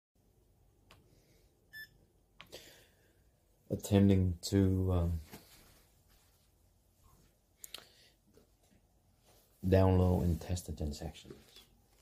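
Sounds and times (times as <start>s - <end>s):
payment terminal electronic beep: 1.7s - 2.0s.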